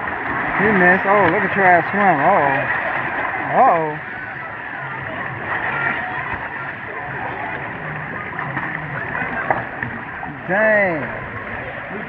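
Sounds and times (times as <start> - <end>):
hubbub of voices: 0.0 - 12.0
pool water splashing: 0.0 - 12.0.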